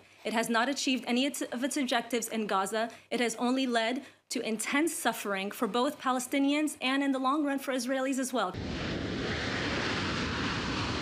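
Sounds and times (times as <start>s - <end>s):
jet engines running: 8.6s - 11.0s.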